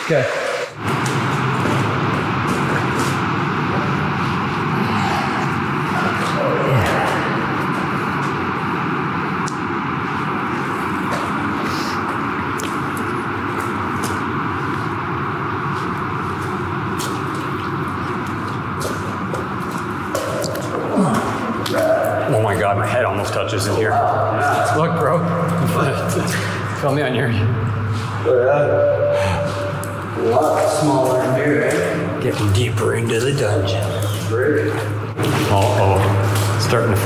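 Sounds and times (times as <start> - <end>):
footsteps on wet floor: 0.8 - 4.6, 10.5 - 22.7, 29.5 - 37.0
rushing water in drain tunnel: 16.1 - 23.9, 30.2 - 37.0.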